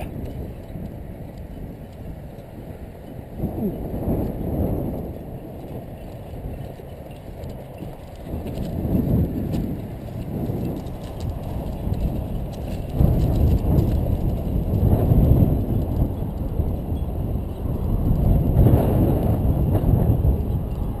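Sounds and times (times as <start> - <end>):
buggy wheels rumbling over grass: 0.0 - 21.0
wind buffeting microphone: 0.0 - 21.0.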